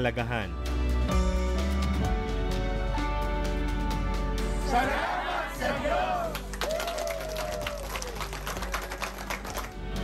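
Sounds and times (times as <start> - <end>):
soft background music: 0.0 - 10.0
people clapping: 5.4 - 10.0.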